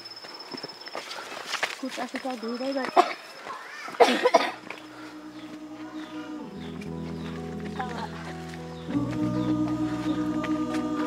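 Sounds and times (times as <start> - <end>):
person coughing: 2.9 - 3.2, 3.9 - 4.6
low sustained music notes: 4.6 - 11.0.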